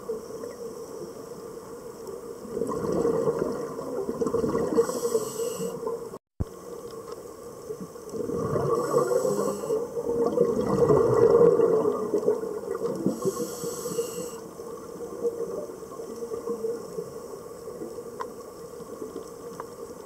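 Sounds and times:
bubbling exhaled air underwater: 0:02.4 - 0:06.2, 0:08.1 - 0:17.0
short high hisses: 0:13.2 - 0:14.4.

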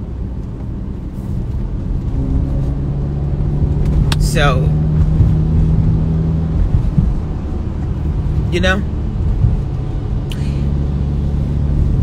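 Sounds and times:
car engine drone: 0:00.0 - 0:12.0
road rumble: 0:00.0 - 0:12.0.

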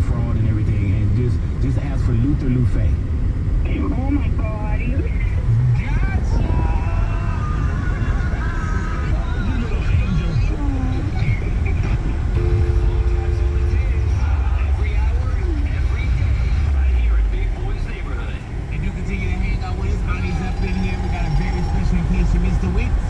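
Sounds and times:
car road and engine rumble: 0:00.0 - 0:23.0
faint radio voices: 0:00.0 - 0:23.0.

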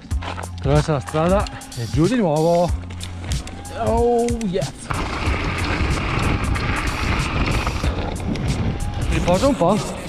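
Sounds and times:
background music: 0:00.0 - 0:10.0
mountain bike rattling on rocks: 0:02.2 - 0:09.8
wind buffeting microphone: 0:02.8 - 0:10.0.

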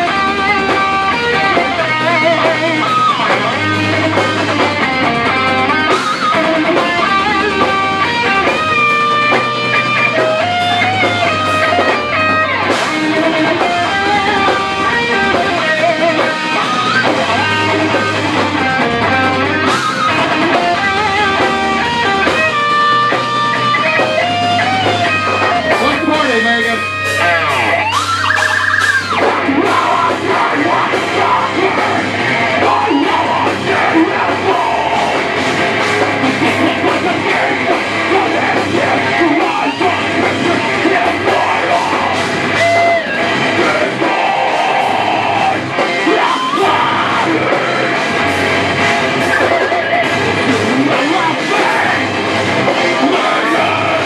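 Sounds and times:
live heavy metal band: 0:00.0 - 0:54.0.

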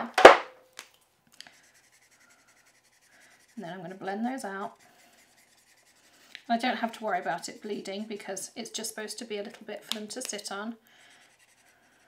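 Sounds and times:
marker scratching on card: 0:01.5 - 0:08.4, 0:11.0 - 0:12.0.

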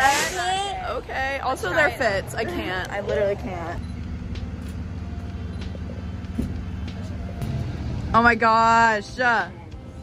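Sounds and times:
engine humming: 0:00.0 - 0:10.0.

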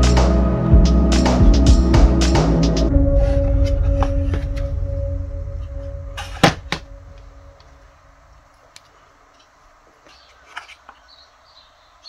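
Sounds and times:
background music droning tone: 0:00.0 - 0:08.4.

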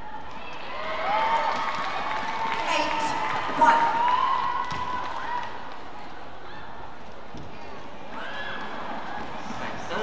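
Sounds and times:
murmur of hall: 0:00.0 - 0:10.0.

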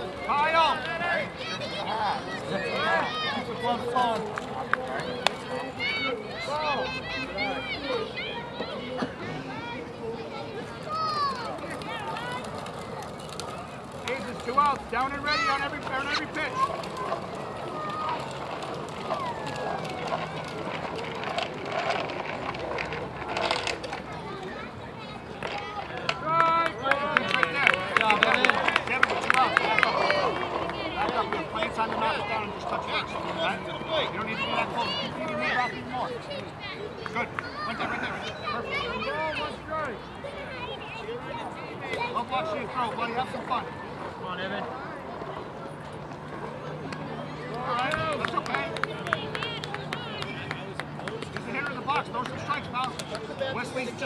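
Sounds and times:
spectators chattering and calling: 0:00.0 - 0:54.0.

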